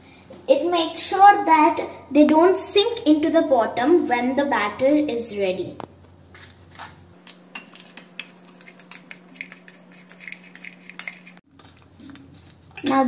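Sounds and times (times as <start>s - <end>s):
metal spoon scraping steel bowl: 7.5s - 11.4s.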